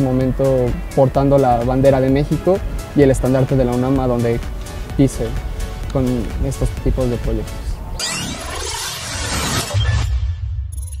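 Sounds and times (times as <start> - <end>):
glittering rush of noise: 7.9 - 10.2.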